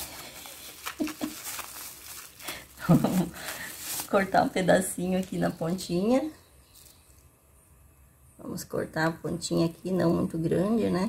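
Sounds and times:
plastic bag rustling and crinkling: 0.0 - 7.3.

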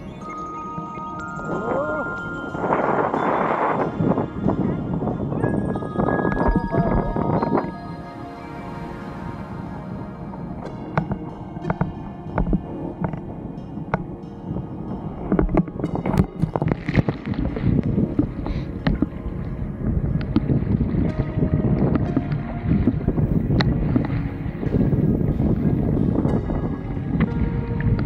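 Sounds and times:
background music: 0.0 - 28.0
wind buffeting microphone: 0.8 - 28.0.

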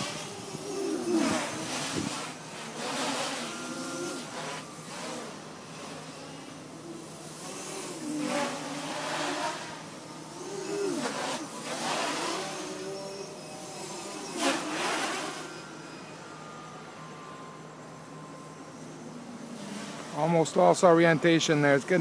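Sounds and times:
quadcopter motors buzzing: 0.0 - 22.0.

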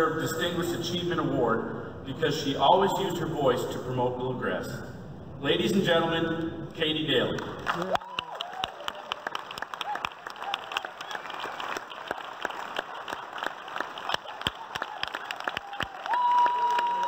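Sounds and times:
audience clapping: 7.3 - 17.0.

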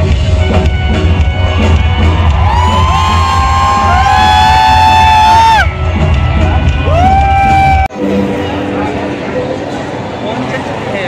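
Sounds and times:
live band music: 0.0 - 9.3
crowd cheering: 0.6 - 7.9.

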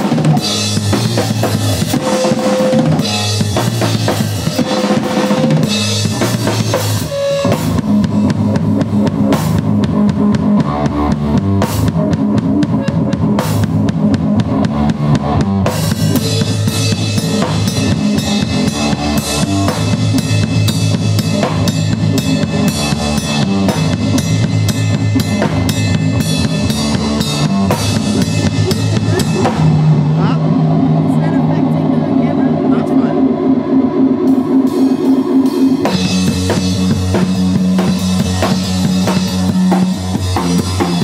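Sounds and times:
drum kit and cymbal hits: 0.0 - 31.6, 32.2 - 41.0
wavering electric guitar notes: 0.0 - 41.0.

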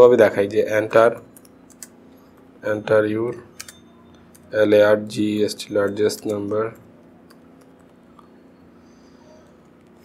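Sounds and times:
laptop keyboard typing: 1.4 - 2.0.

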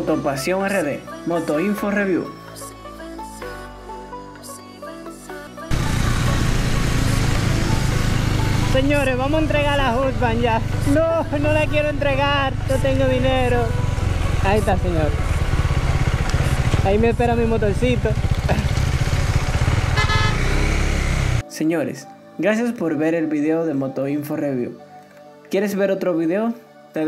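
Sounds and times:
road and wind noise: 5.7 - 10.8, 13.4 - 21.4
motorcycle engine running: 5.7 - 21.4.

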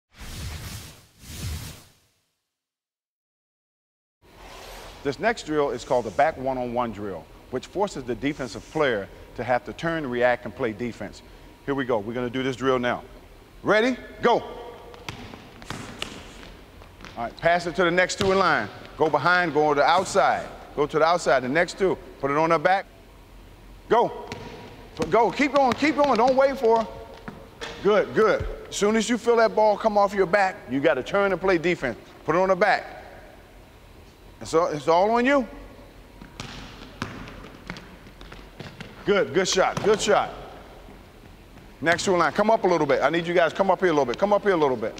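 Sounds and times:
basketball bouncing on wooden floor: 14.6 - 17.3, 18.1 - 19.1, 24.2 - 28.6, 36.2 - 42.2.

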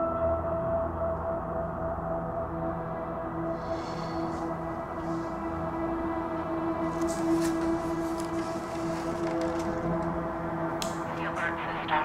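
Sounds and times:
low humming drone: 0.0 - 12.0.

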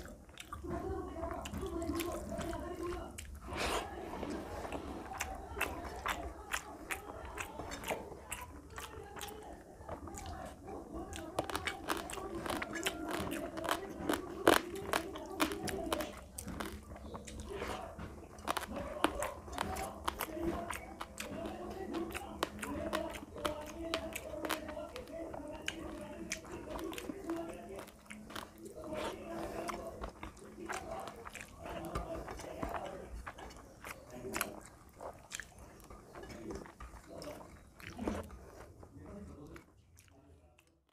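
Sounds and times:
fingers squishing rice: 0.0 - 40.2
close chewing with wet mouth clicks: 0.0 - 40.9.

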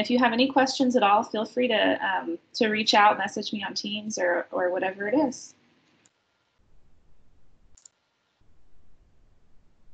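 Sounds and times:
faint low background rumble: 6.6 - 7.8, 8.4 - 9.9.

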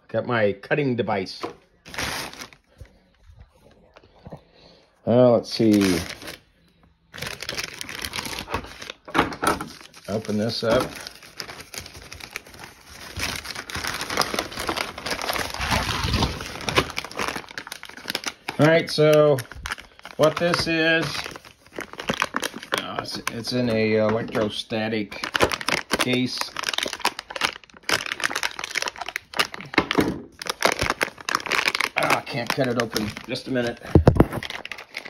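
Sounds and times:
plastic bag crinkling: 1.8 - 4.3, 5.4 - 35.0.

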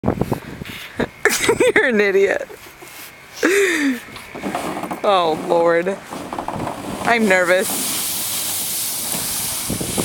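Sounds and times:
kayak hull sliding over snow: 2.6 - 10.0.

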